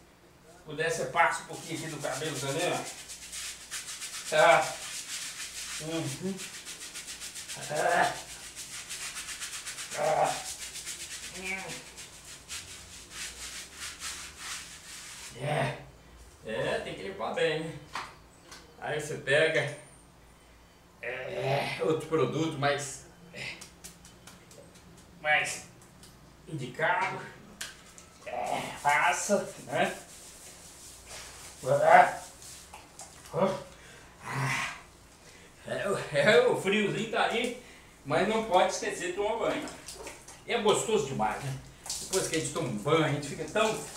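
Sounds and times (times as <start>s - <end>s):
brush scrubbing lathered scalp: 0.9s - 15.4s, 27.8s - 33.7s, 38.2s - 43.9s.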